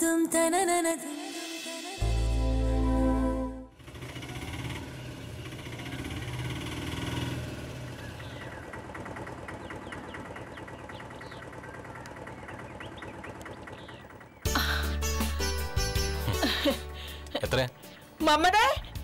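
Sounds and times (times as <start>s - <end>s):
music: 0.0s - 3.7s, 14.5s - 19.0s
auto-rickshaw engine idling: 3.7s - 15.0s.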